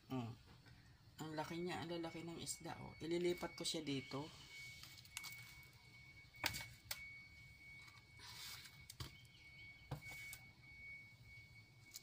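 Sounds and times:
faint high whine: 0:00.0 - 0:12.0.

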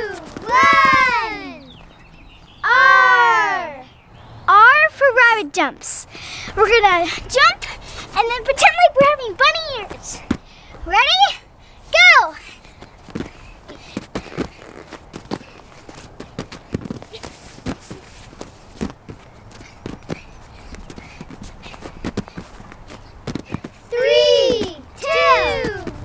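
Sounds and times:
soft thuds on gymnastics mats: 0:00.1 - 0:01.4, 0:13.0 - 0:26.0.

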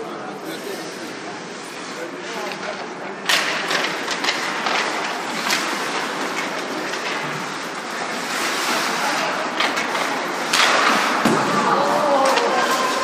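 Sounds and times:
skates scraping ice: 0:00.5 - 0:13.0
hockey stick and puck clicks: 0:02.5 - 0:08.7, 0:09.5 - 0:13.0
loud clatter: 0:03.3 - 0:11.8.

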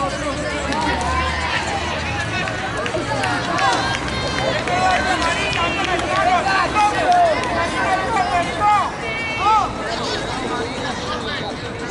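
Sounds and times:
voices calling out: 0:00.0 - 0:11.9.

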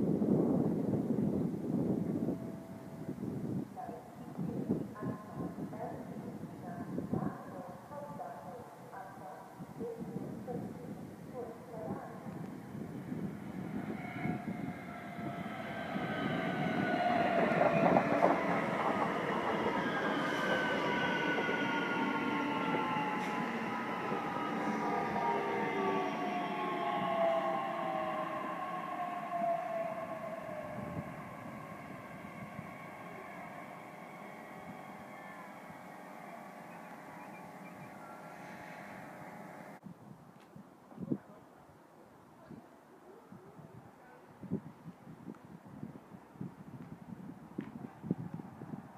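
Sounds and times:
electric train arriving: 0:00.6 - 0:07.1, 0:10.9 - 0:39.8.

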